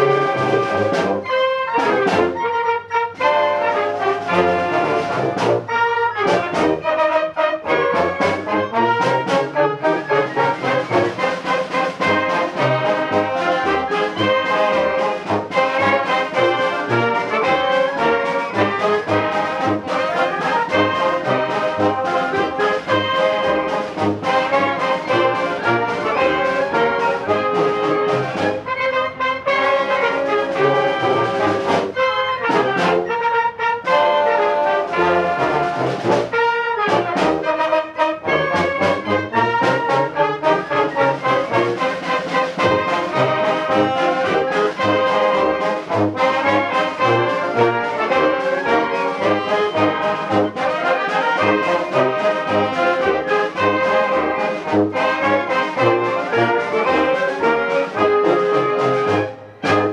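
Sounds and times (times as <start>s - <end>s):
concert band playing a march: 0.0s - 59.9s.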